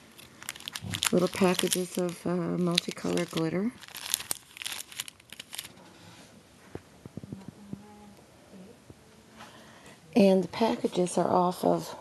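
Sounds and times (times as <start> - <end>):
plastic packaging crinkling: 0.0 - 5.8.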